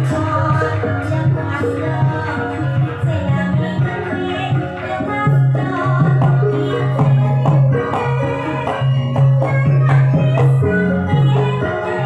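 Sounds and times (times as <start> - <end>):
band melody and bass: 0.0 - 12.0.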